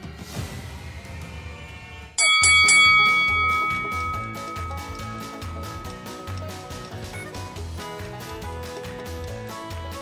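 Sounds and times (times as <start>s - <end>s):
bright bell-like chime: 2.2s - 7.5s
music with steady beat: 2.5s - 10.0s.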